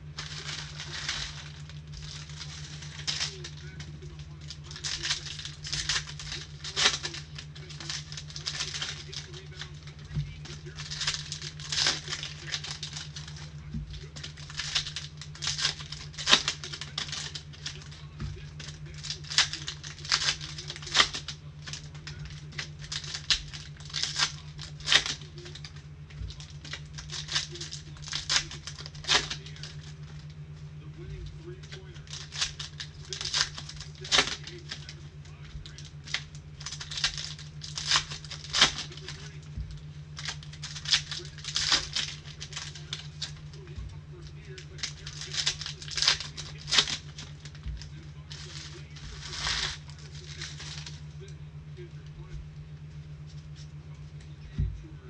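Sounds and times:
wrappers crinkled and torn: 0.0 - 54.4
steady low hum: 0.0 - 55.0.

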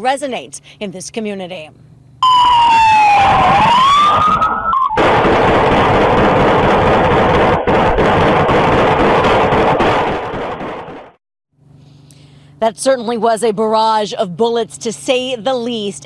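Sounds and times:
police siren wailing: 2.2 - 6.0
gunfire barrage: 2.3 - 11.2.

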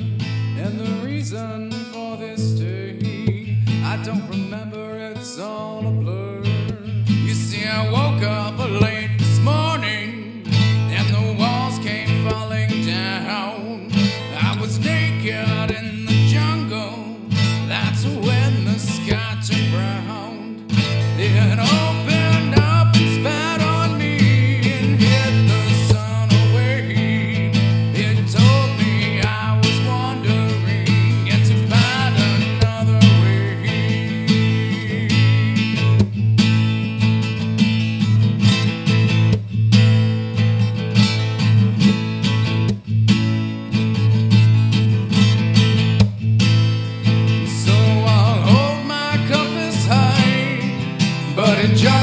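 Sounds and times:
fingerstyle acoustic guitar: 0.0 - 52.0
percussive slaps on guitar: 3.2 - 4.0, 7.6 - 9.8, 10.5 - 13.2, 20.7 - 36.8, 38.4 - 40.1, 40.9 - 43.4, 44.8 - 52.0.

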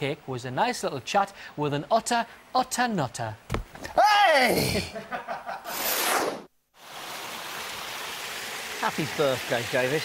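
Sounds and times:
running water: 6.8 - 10.0.

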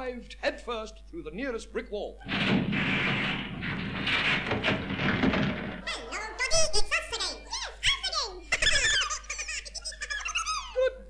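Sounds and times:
high-pitched comic voices chattering: 5.8 - 10.9.

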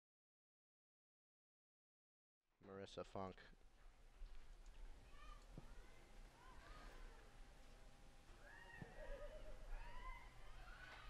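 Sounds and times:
distant voices shouting: 5.0 - 7.4, 8.3 - 11.0.

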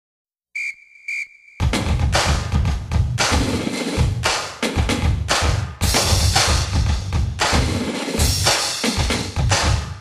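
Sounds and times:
sports whistle blasts: 0.6 - 1.6
loud drum-heavy music: 1.6 - 10.0.

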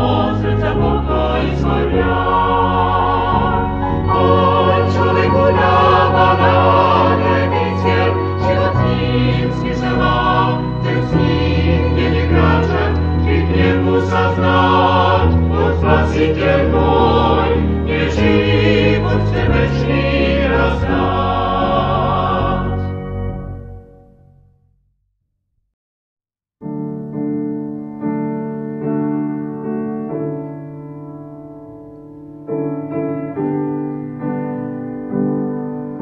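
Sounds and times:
choir singing: 0.0 - 23.2.

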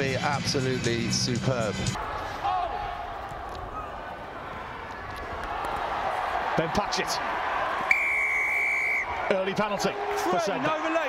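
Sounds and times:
players shouting: 2.0 - 11.0
stadium crowd murmur: 2.0 - 11.0.

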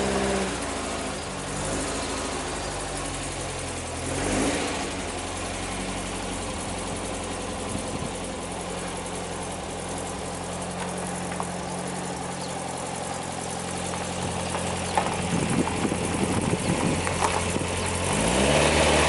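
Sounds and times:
van engine running at low revs: 0.0 - 19.0.

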